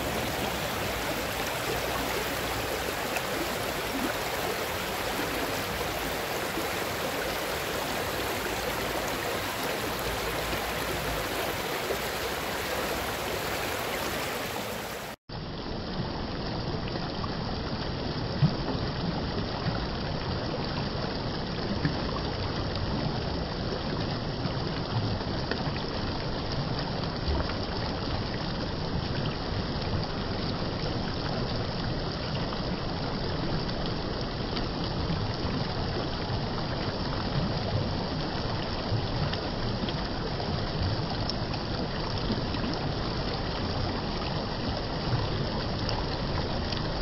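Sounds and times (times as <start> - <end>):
stream water over rocks: 0.0 - 47.0.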